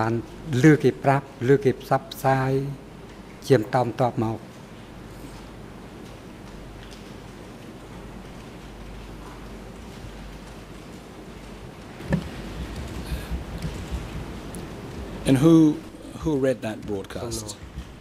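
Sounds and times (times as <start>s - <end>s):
low mains hum: 0.0s - 18.0s
microphone hiss: 0.0s - 18.0s.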